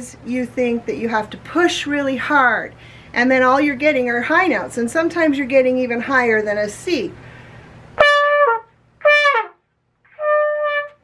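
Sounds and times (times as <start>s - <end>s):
trumpet high notes: 8.0s - 11.0s.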